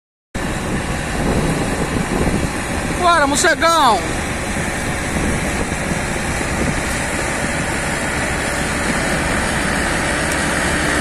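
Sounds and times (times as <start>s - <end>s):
diesel engines rumbling: 0.4s - 11.0s.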